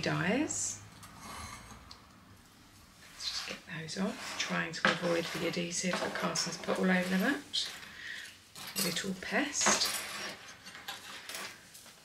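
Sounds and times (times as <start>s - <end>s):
craft pieces rustling on mat: 3.0s - 12.0s.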